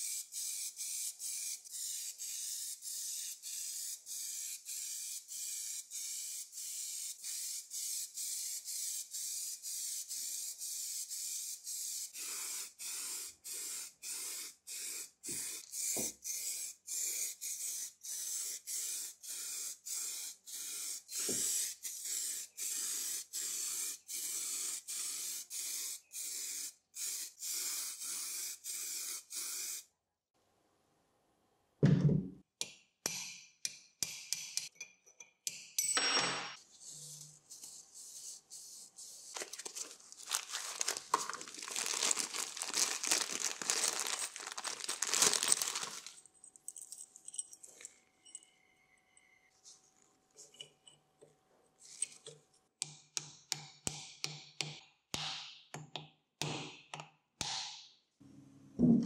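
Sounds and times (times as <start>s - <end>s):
aerosol spray cans hissing: 0.0s - 29.9s, 36.8s - 46.2s.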